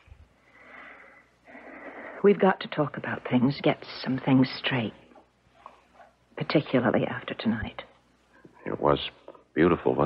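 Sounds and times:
soft human breathing: 0.0s - 2.3s.

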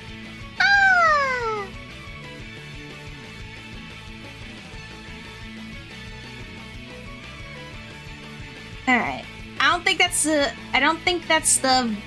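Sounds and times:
quiet background music: 0.0s - 12.0s
high call gliding down in pitch: 0.6s - 1.7s.

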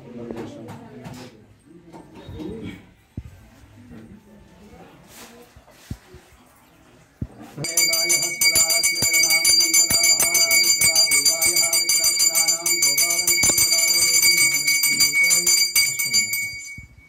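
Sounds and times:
hand bell ringing rapidly: 7.6s - 17.0s.

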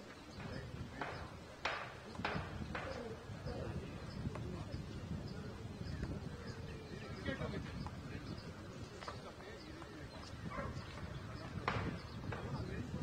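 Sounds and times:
faint distant voices: 0.0s - 13.0s
sharp knocks: 0.4s - 3.0s, 11.6s - 12.6s.

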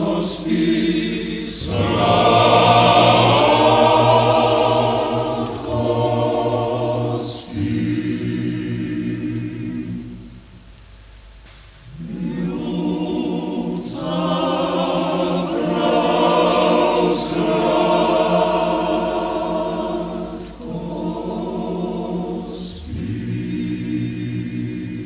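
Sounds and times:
male choir singing a cappella: 0.0s - 10.4s, 11.9s - 25.0s.

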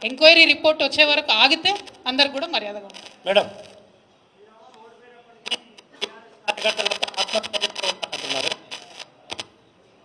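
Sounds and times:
short sharp clicks: 5.4s - 6.2s.

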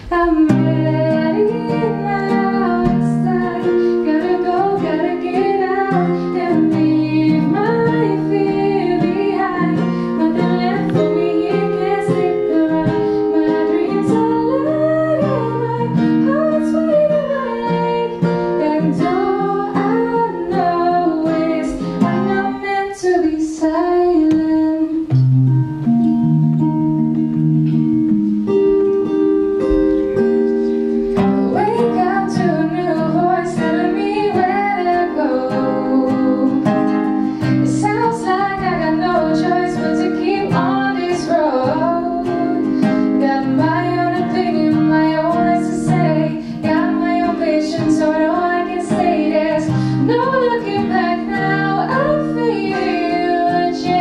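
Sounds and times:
woman singing into a microphone: 0.0s - 25.6s, 31.1s - 54.0s
fingerpicked acoustic guitar: 0.0s - 54.0s.

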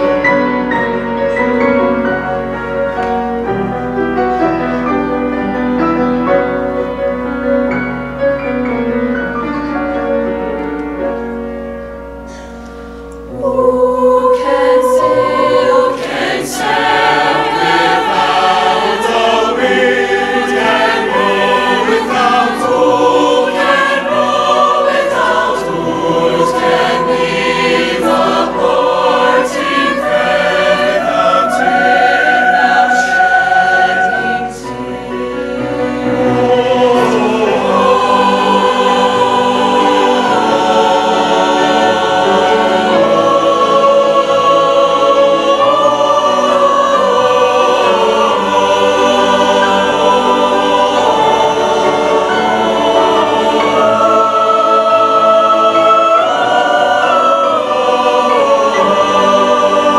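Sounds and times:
mixed choir singing held chords: 0.0s - 59.9s.

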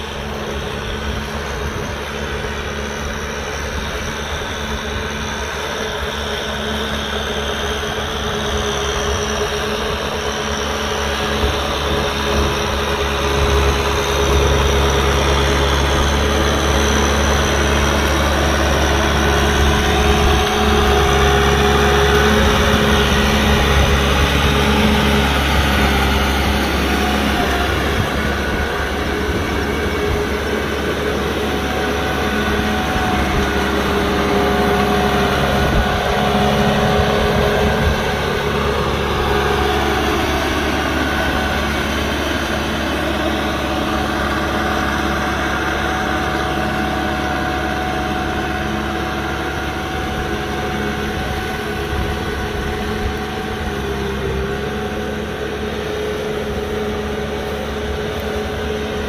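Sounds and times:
tractor diesel engine running: 0.0s - 59.0s.

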